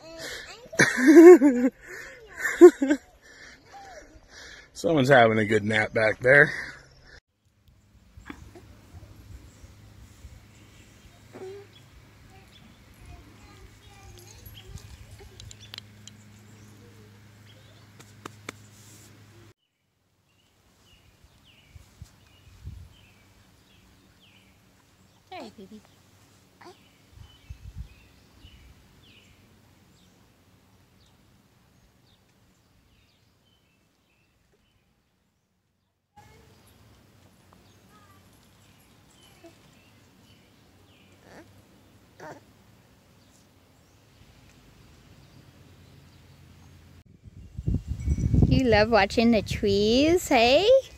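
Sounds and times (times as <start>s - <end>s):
baby babbling and grunting: 11.3s - 11.7s, 26.6s - 26.8s, 41.2s - 41.5s, 42.2s - 42.4s.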